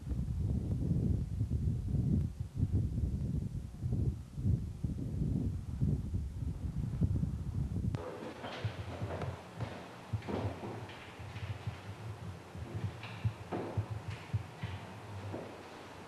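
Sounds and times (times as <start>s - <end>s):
wind buffeting microphone: 0.0s - 16.0s
knocks on wooden furniture: 8.0s - 15.6s
footsteps on wooden floor: 8.0s - 16.0s.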